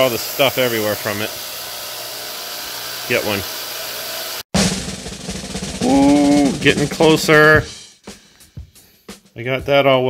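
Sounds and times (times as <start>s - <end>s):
belt sander running: 0.0s - 4.4s
rapid snare roll: 4.3s - 7.7s
drum-heavy music: 4.5s - 10.0s.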